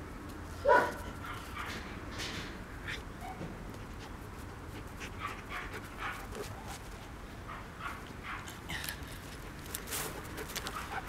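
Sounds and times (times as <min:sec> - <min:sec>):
dog panting: 0:03.7 - 0:06.8, 0:10.1 - 0:11.0.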